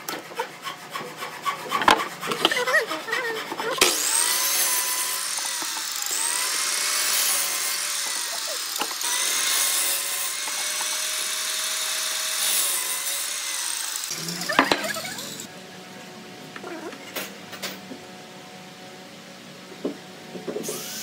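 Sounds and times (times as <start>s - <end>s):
miter saw cutting wood: 0.0s - 15.5s, 20.6s - 21.0s.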